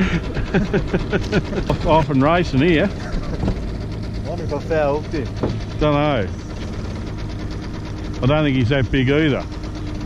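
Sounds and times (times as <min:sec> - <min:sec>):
outboard motor running: 0:00.0 - 0:10.0.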